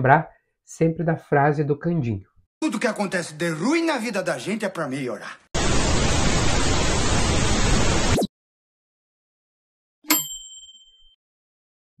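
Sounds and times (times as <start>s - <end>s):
bell-like ding: 10.0s - 11.2s.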